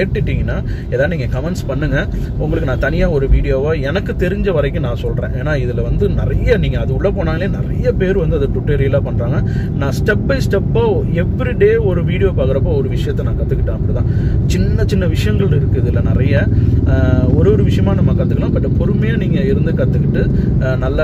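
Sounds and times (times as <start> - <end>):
car road and engine rumble: 0.0 - 21.0
man talking: 0.0 - 21.0.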